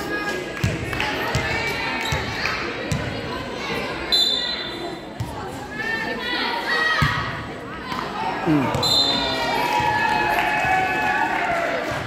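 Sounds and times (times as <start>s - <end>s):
voices in a hall: 0.0s - 12.0s.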